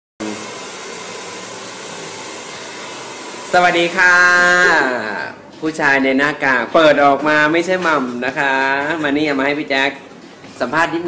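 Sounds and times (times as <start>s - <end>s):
hair dryer blowing: 0.2s - 5.0s.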